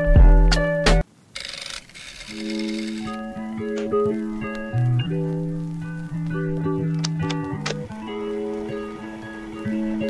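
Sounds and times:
guitar backing track: 0.0s - 1.0s, 2.4s - 10.0s
background music: 0.0s - 1.1s, 2.3s - 10.0s.

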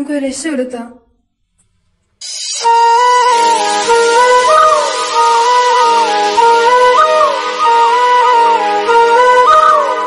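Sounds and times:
slow flute-like melody: 2.2s - 10.0s.

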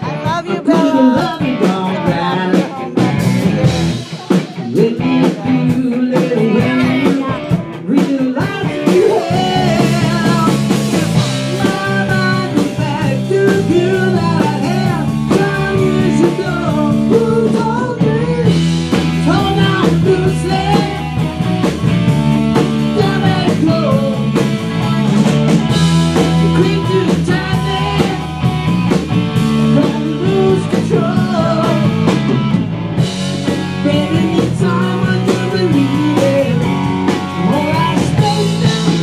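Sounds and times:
bass guitar: 0.0s - 39.0s
drums: 0.0s - 39.0s
electric guitars: 0.0s - 39.0s.

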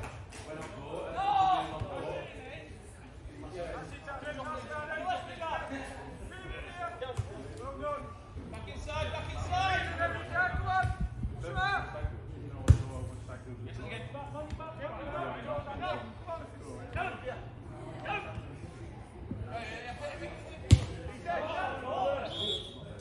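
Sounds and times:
football kicks: 12.6s - 13.0s, 20.6s - 21.0s.

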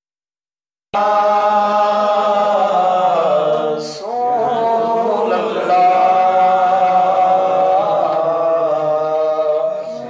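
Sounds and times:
man chanting: 1.0s - 10.0s.

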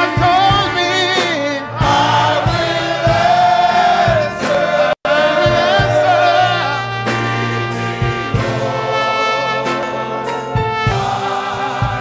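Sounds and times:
low accompaniment: 0.0s - 12.0s
men's choir singing gospel: 0.0s - 12.0s.

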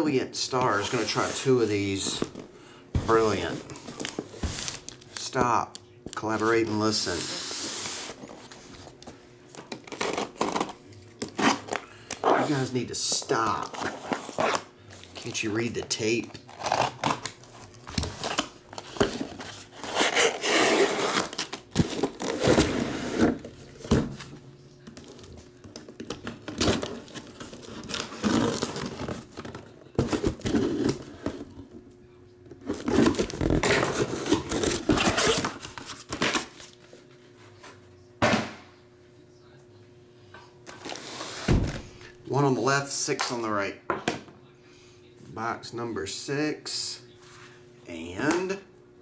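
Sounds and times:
cardboard rustling and scraping: 0.6s - 4.9s, 26.7s - 31.6s.

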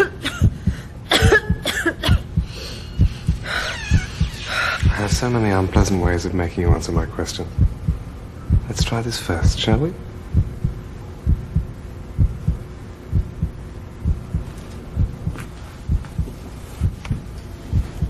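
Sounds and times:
faint steady hum: 0.0s - 18.0s
heartbeat double thump: 0.4s - 5.4s, 7.6s - 8.8s, 10.3s - 18.0s.

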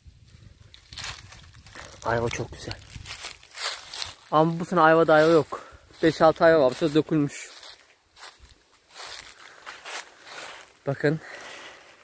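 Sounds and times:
footsteps through grass: 0.2s - 12.0s.

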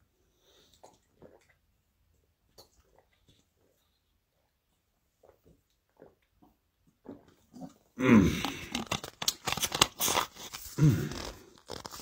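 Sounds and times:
person gulping a drink: 0.5s - 3.8s, 5.1s - 12.0s.

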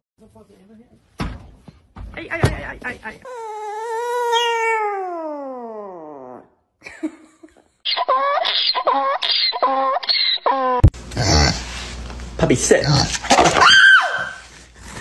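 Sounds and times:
dog howling: 3.3s - 6.5s.

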